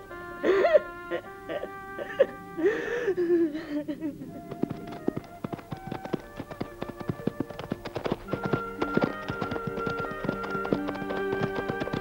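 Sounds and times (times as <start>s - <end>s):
film score music: 0.0s - 12.0s
horse hooves clip-clopping: 4.2s - 12.0s.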